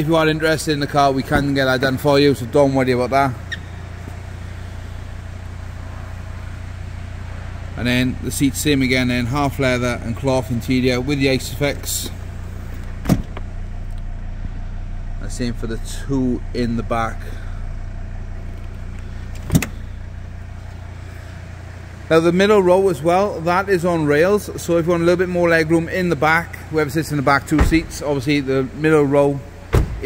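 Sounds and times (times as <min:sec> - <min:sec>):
low hum: 0:00.0 - 0:30.0.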